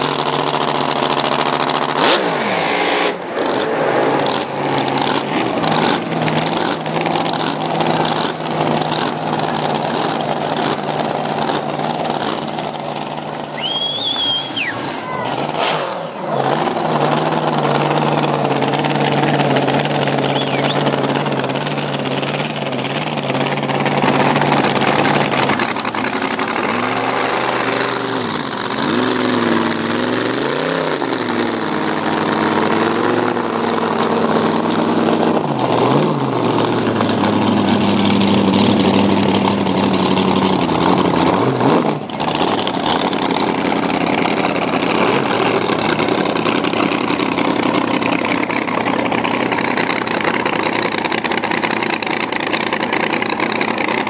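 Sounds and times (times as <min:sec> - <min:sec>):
boat engine idling and revving: 0:00.0 - 0:54.0.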